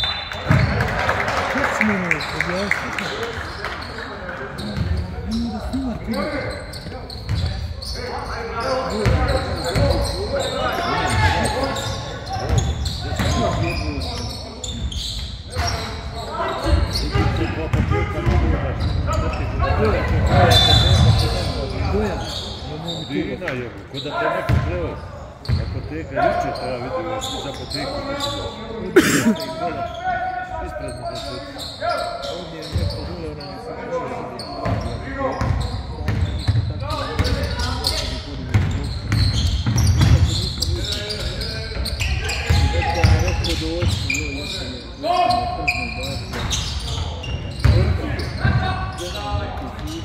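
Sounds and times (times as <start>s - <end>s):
people calling out: 4.6s - 6.2s
basketball bouncing on wooden court: 17.7s - 18.9s.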